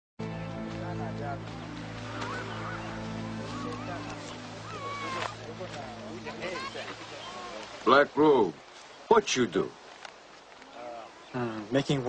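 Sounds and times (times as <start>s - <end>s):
low music chord: 0.2s - 6.4s
birds calling: 0.8s - 12.0s.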